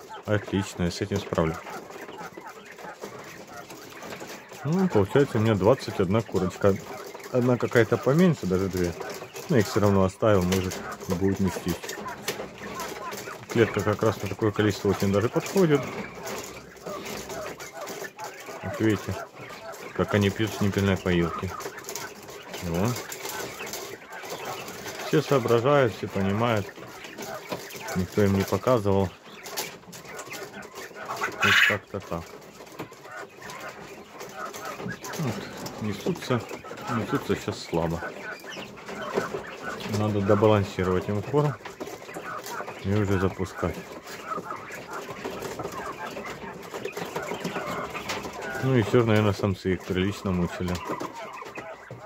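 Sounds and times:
quail drinking: 0.0s - 52.0s.

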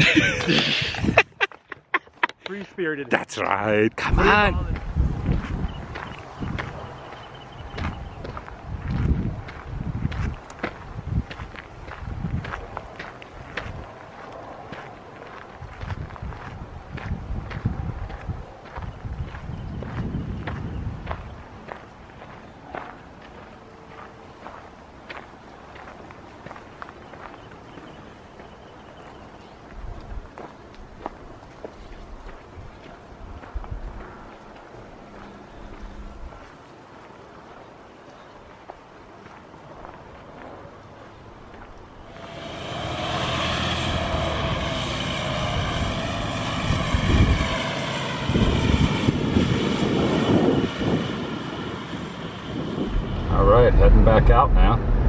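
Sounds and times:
footsteps on gravel: 4.7s - 18.2s
low rumbles: 41.9s - 55.0s.

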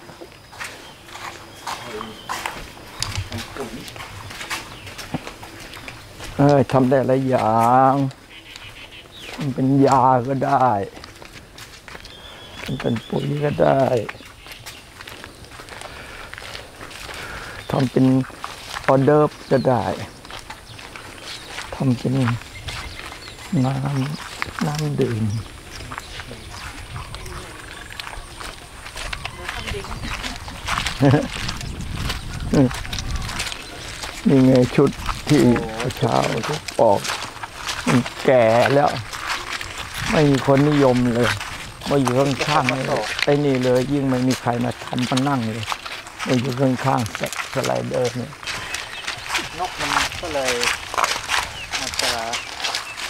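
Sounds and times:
sandal footsteps on stone path: 0.0s - 53.0s
person speaking: 1.7s - 2.6s, 6.3s - 8.2s, 9.4s - 11.0s, 12.6s - 14.2s, 17.2s - 20.2s, 21.6s - 22.4s, 23.4s - 31.4s, 32.5s - 52.7s
faint animal calls: 8.1s - 9.5s, 22.5s - 31.2s, 32.2s - 34.6s.

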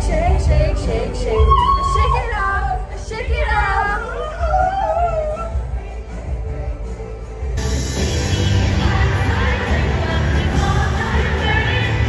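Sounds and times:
woman singing: 0.0s - 6.0s, 8.6s - 12.0s.

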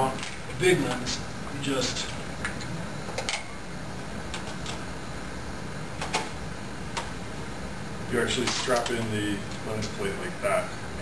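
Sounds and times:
steady room hum: 0.0s - 11.0s.

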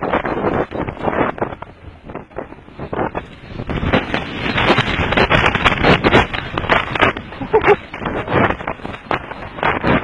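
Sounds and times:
bike rattling over bumps: 0.0s - 10.0s
tyre noise: 0.0s - 10.0s
wind on microphone: 0.0s - 10.0s.

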